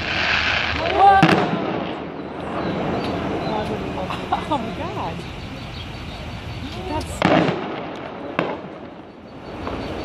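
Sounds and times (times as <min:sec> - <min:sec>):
explosive cracks: 0:00.0 - 0:03.8, 0:07.0 - 0:10.0
crowd voices: 0:00.5 - 0:10.0.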